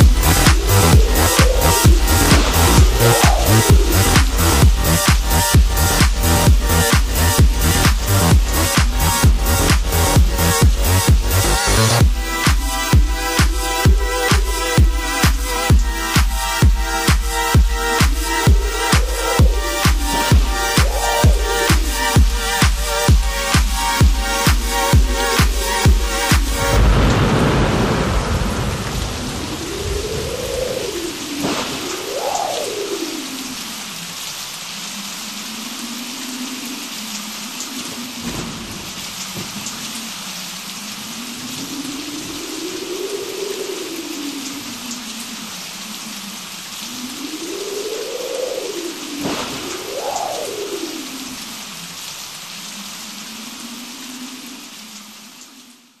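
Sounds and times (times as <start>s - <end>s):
thunder: 0.0s - 6.0s, 19.4s - 22.4s, 26.5s - 32.7s, 37.9s - 39.9s, 49.2s - 51.4s
steady rain hiss: 0.0s - 56.0s.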